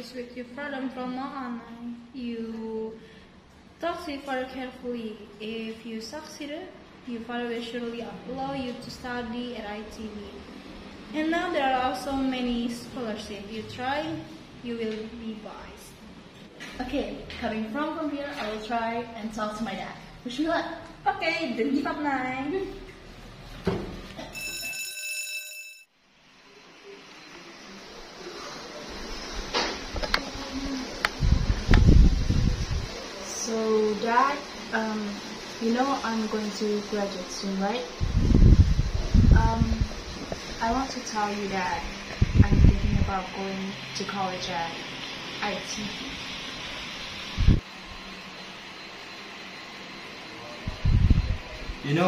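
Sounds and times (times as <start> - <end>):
high-pitched electronic ringing tone: 24.3 - 25.9
room hiss: 26.0 - 52.0.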